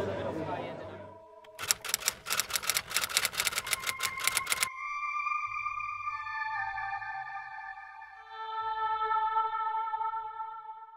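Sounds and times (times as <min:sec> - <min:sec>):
typewriter keys clacking: 0:01.5 - 0:04.7.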